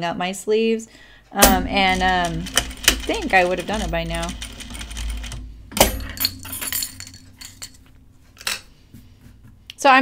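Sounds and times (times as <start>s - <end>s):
sewing machine clicks: 1.4s - 5.9s
small clinks: 5.8s - 8.7s.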